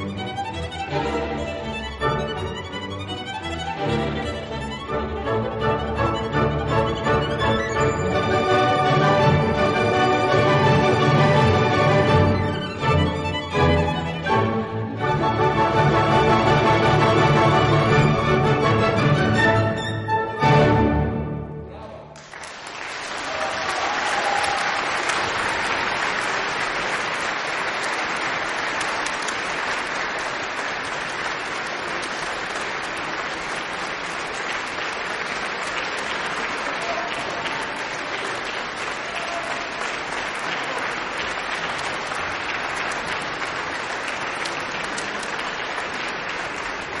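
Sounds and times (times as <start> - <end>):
audience applauding: 22.2 - 47.0.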